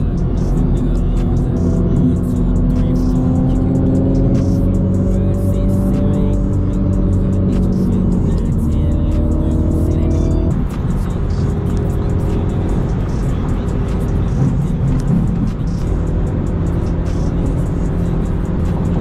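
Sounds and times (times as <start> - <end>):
car engine drone: 0.0 - 19.0
music playing: 0.0 - 19.0
road noise: 0.0 - 19.0.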